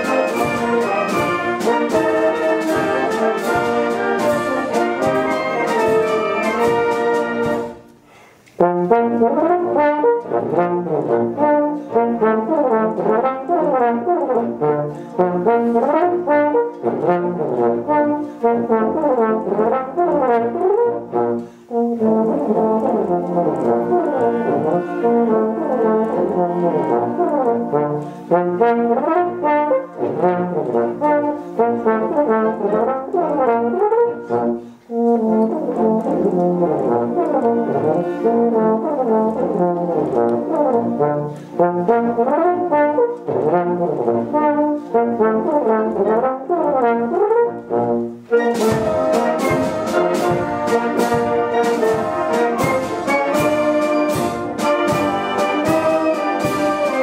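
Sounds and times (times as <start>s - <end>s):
concert band accompaniment: 0.0s - 57.0s
euphonium solo: 21.9s - 57.0s.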